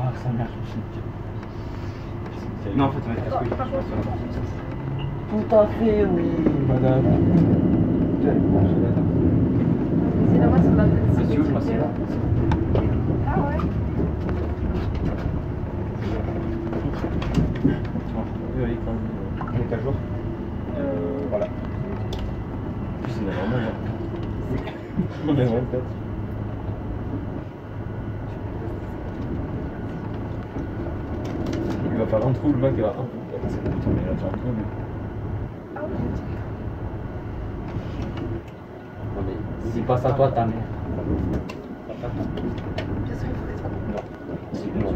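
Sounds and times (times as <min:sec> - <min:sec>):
electric train running: 0:00.0 - 0:44.9.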